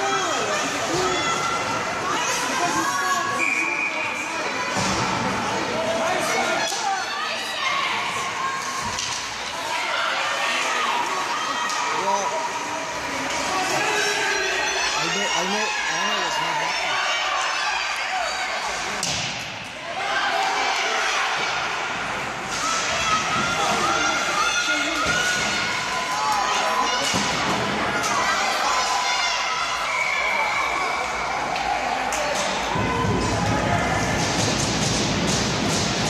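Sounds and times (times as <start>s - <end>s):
spectators talking and calling out: 0.0s - 36.0s
players hitting the boards: 32.2s - 36.0s.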